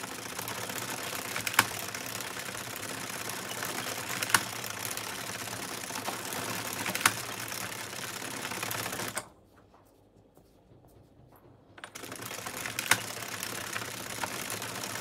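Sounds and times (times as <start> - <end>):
knitting machine clattering: 0.0 - 9.4, 11.5 - 15.0
sharp clicks: 3.6 - 4.8.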